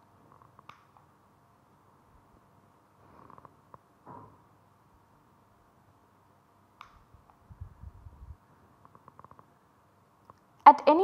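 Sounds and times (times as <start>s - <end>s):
mouse click: 0.6s - 1.1s, 6.8s - 7.4s.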